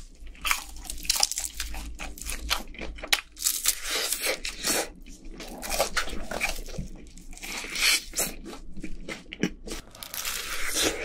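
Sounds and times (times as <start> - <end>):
crunching fried chicken: 0.0 - 11.0.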